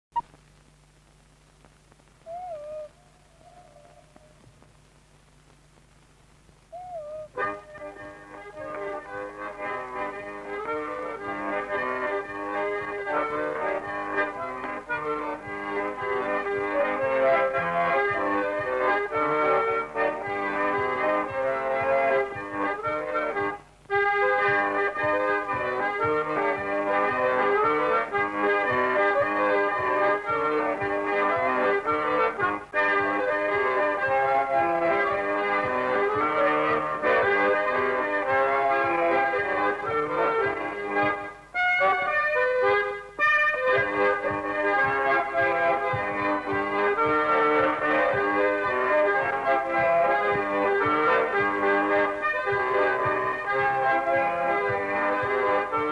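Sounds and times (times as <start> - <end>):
accordion playing folk tune: 6.8 - 55.9.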